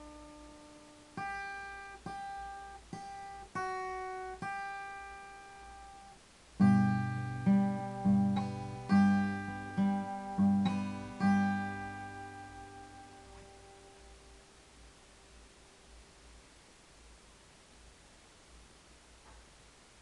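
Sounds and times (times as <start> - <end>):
guitar notes and chords: 0.0 - 14.9.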